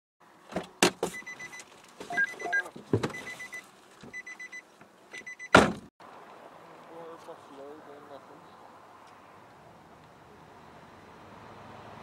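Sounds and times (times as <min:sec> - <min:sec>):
short electronic beeps: 0:01.2 - 0:04.6, 0:05.2 - 0:05.6
knocks and clunks: 0:02.0 - 0:03.3, 0:05.1 - 0:05.9.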